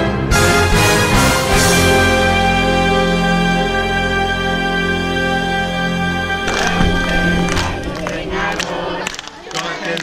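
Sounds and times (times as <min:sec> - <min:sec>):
background music: 0:00.0 - 0:09.2
children's voices: 0:06.5 - 0:10.0
hand clapping: 0:06.5 - 0:10.0.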